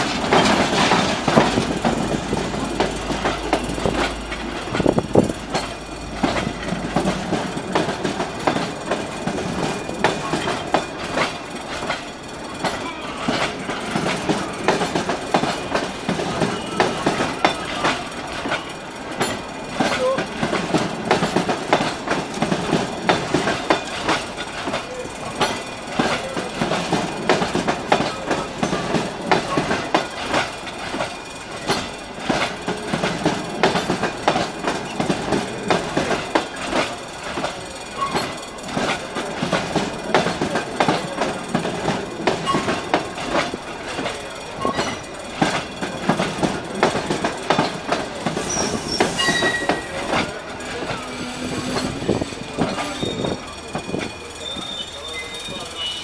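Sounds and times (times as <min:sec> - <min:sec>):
train wheels clacking over rail joints: 0:00.0 - 0:56.0
train wheel squeal: 0:08.4 - 0:20.4, 0:22.7 - 0:39.5, 0:42.2 - 0:56.0.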